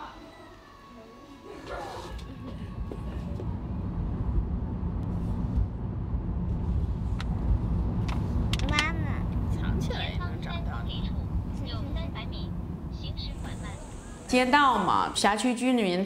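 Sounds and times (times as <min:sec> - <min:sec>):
car cabin road rumble: 0:02.0 - 0:14.3.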